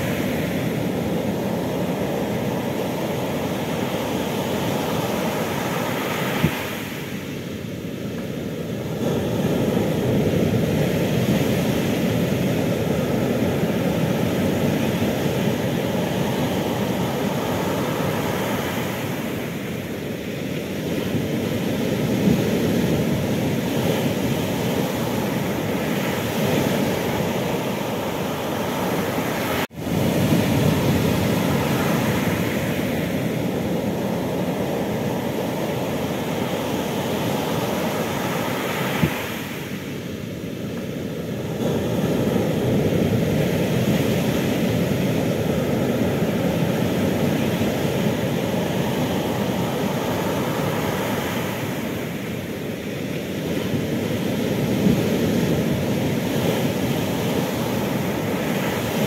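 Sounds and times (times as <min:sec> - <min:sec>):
heavy surf breaking: 0:00.0 - 0:59.0.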